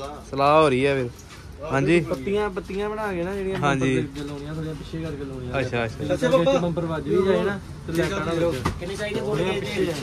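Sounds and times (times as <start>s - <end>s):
men's voices talking: 0.0s - 10.0s.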